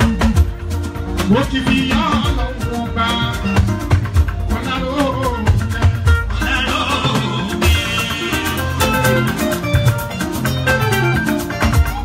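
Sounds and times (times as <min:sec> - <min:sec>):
deep bass and drum beats: 0:00.0 - 0:12.0.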